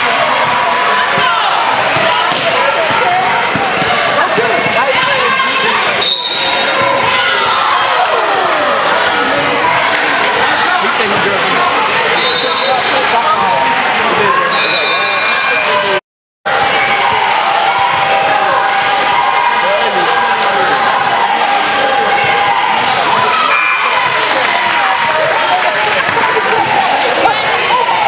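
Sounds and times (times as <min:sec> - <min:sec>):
overlapping voices: 0:07.0 - 0:12.2, 0:16.6 - 0:28.0.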